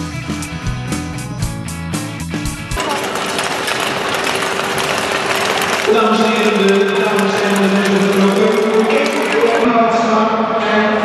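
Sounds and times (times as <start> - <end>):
skate blades scraping on ice: 2.8 - 9.6.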